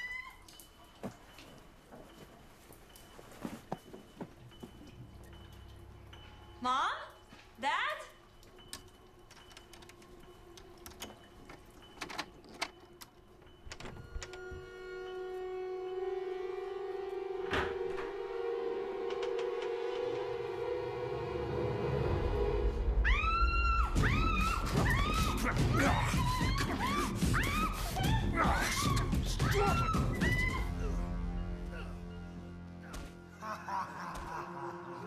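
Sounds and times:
suspense music drone: 0:12.8 - 0:35.0.

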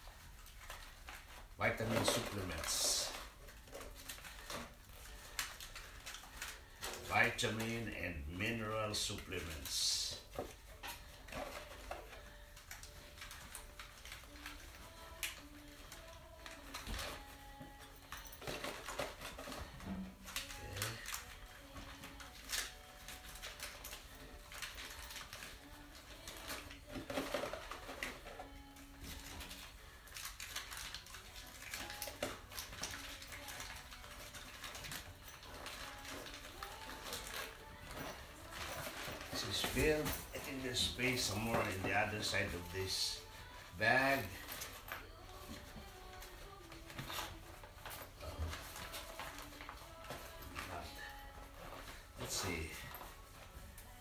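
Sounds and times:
cardboard boxes rustling: 0:34.6 - 0:54.0.

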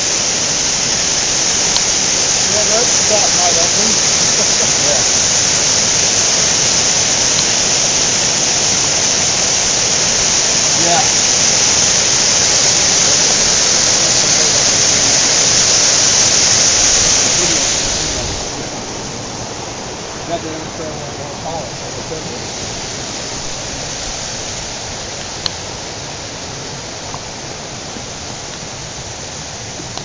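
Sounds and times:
stream rushing over boulders: 0:00.0 - 0:30.0.

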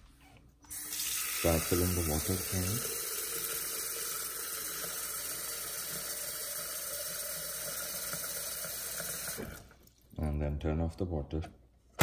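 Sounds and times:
tap water pouring into pitcher: 0:00.7 - 0:10.1.

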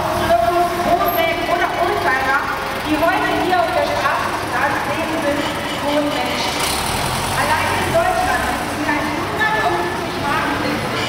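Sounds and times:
truck engine driving past: 0:00.0 - 0:10.9
people talking: 0:00.1 - 0:06.6, 0:07.4 - 0:11.0.

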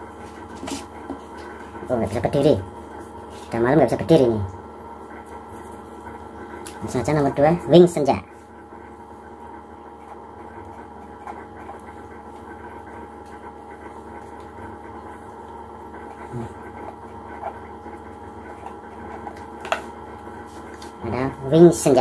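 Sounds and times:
room hum: 0:00.0 - 0:22.0.

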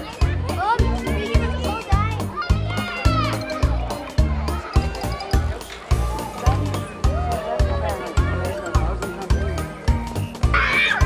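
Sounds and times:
children calling and squealing: 0:00.0 - 0:11.0.

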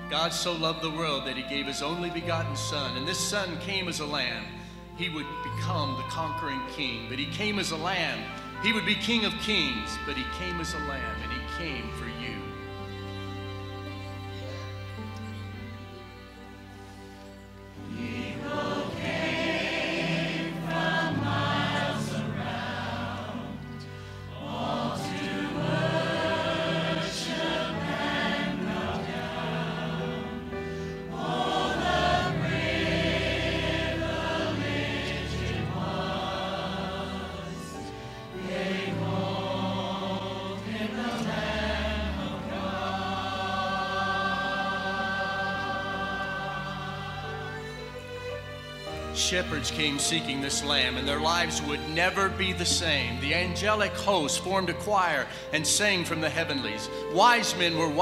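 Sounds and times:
church choir singing: 0:00.0 - 0:13.4, 0:14.3 - 0:58.0
instrumental accompaniment: 0:00.0 - 0:58.0.

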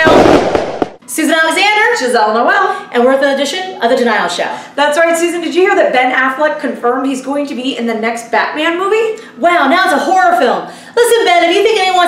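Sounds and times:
hissing crackling burst: 0:00.0 - 0:01.0
woman speaking: 0:01.0 - 0:12.0.

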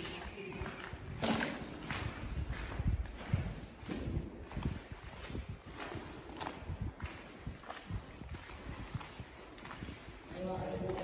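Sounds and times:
footsteps crunching on gravel: 0:00.0 - 0:11.0.

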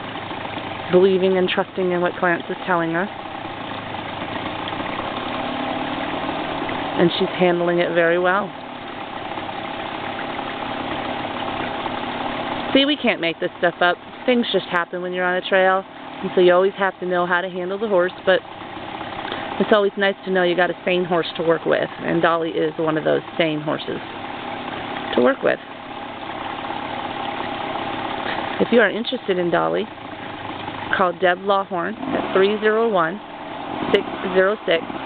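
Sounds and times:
dirt bike engine idling: 0:00.0 - 0:35.0.

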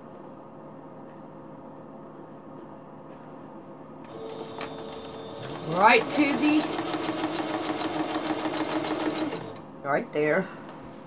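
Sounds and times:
sewing machine motor whine: 0:04.1 - 0:09.6
sewing machine hum: 0:04.1 - 0:09.7.

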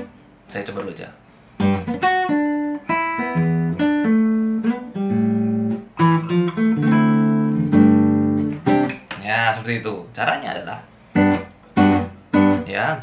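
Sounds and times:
fingerpicked nylon-string guitar: 0:00.0 - 0:13.0.

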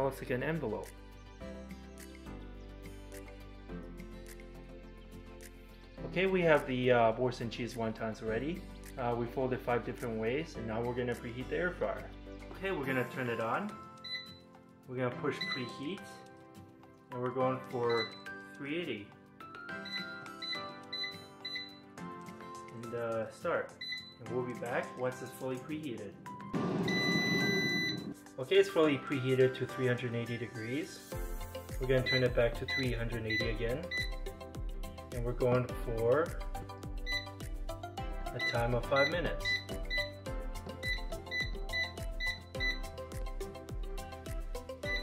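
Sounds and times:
background music with steady beat: 0:00.0 - 0:45.0
air fryer panel beeps: 0:17.9 - 0:18.3, 0:19.9 - 0:21.8, 0:26.9 - 0:28.1, 0:32.0 - 0:34.2, 0:38.4 - 0:40.1, 0:40.8 - 0:42.9.

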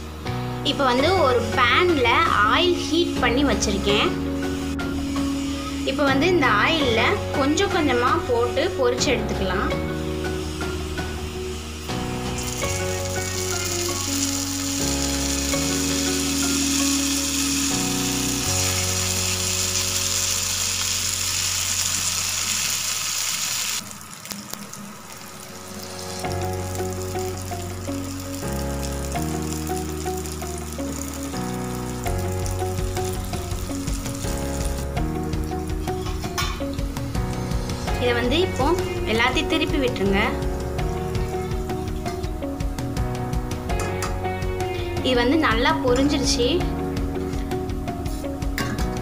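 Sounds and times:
background music: 0:00.0 - 0:22.4, 0:25.2 - 0:49.0
batter deep-frying in hot oil: 0:09.8 - 0:44.2.

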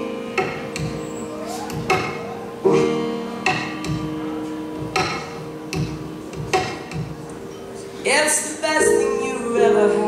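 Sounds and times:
piano chord ringing: 0:00.0 - 0:06.3, 0:08.7 - 0:10.0.

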